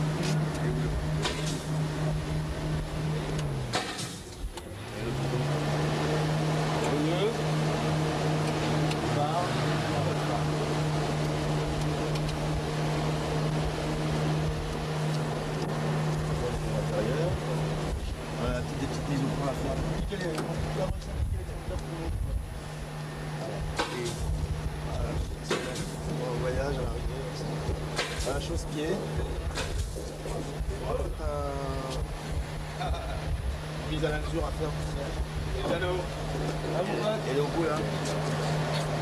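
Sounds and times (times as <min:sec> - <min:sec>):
car engine running: 0:00.0 - 0:39.0.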